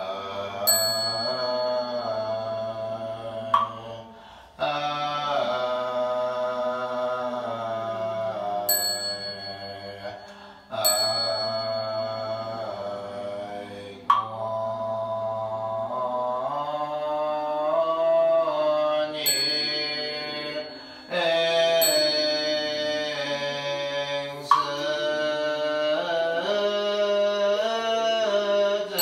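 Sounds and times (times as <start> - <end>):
group chanting in unison: 0.0 - 29.0
small bell ringing: 0.7 - 2.8, 8.7 - 12.8, 19.2 - 23.3.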